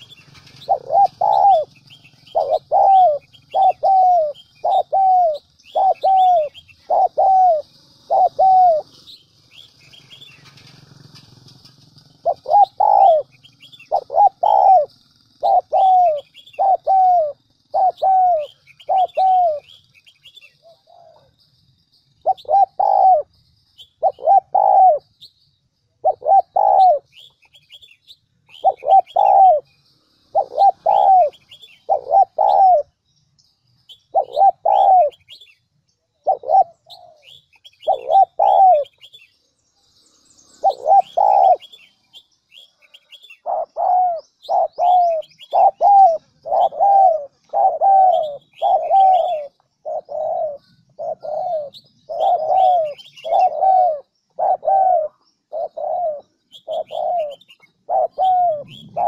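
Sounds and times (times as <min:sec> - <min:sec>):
dove cooing: 0:00.0 - 0:21.4, 0:22.2 - 0:25.2, 0:26.0 - 0:33.0, 0:33.9 - 0:35.6, 0:36.2 - 0:39.3, 0:40.6 - 0:59.0
small birds chirping: 0:00.0 - 0:59.0.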